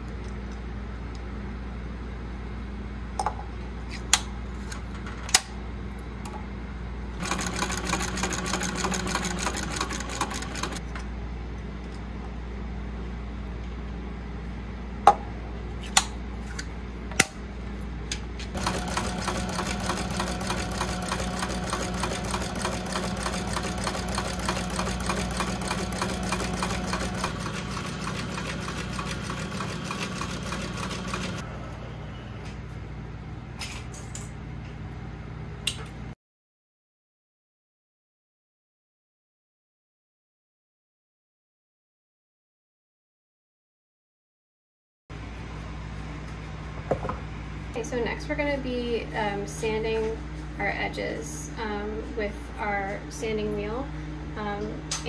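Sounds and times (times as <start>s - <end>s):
sewing machine stitching: 7.2s - 10.8s, 18.6s - 31.4s.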